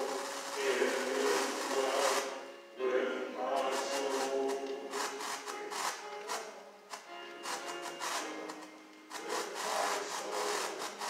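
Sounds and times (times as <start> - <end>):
faint sustained musical tones: 0.0 - 11.0
rough rubbing or scraping: 0.0 - 11.0.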